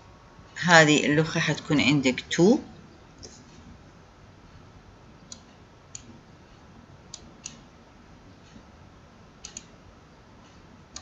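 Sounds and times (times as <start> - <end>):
low room hiss: 0.0 - 11.0
computer mouse clicks: 5.3 - 6.1, 9.4 - 9.7.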